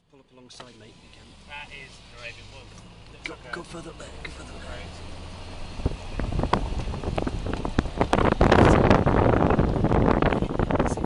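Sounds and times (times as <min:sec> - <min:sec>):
wind buffeting microphone: 0:05.5 - 0:11.0
stones crackling under tyres: 0:05.6 - 0:09.2.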